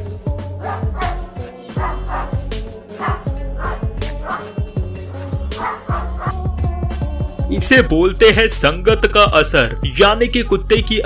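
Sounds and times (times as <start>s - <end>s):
music with steady beat: 0.0s - 11.0s
cockatoo bark-like calls: 0.6s - 4.6s, 5.6s - 6.4s.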